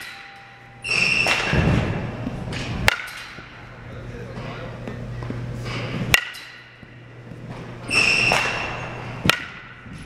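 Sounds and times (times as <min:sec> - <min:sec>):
bat cracking softballs: 0:00.0 - 0:10.0.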